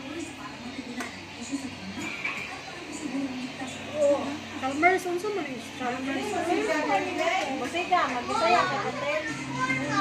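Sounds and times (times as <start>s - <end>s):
children talking and playing: 0.0s - 10.0s.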